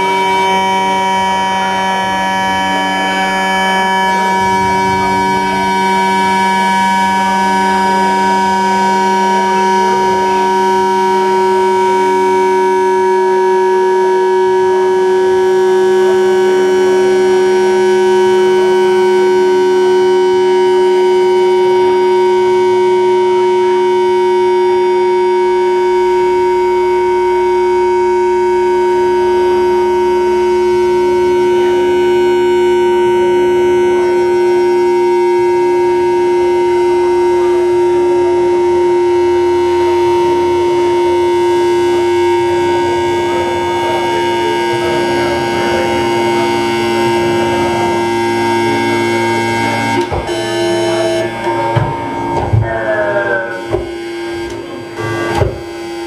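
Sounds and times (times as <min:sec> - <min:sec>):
electronic drone music: 0:00.0 - 0:56.0.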